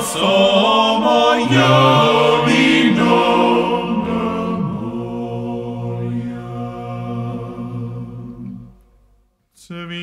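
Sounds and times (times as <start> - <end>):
male vocal ensemble singing harmony: 0.0 - 8.8, 9.6 - 10.0.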